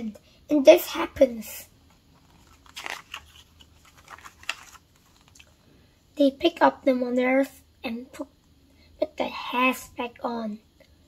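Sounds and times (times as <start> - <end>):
paper page turning: 2.2 - 5.6.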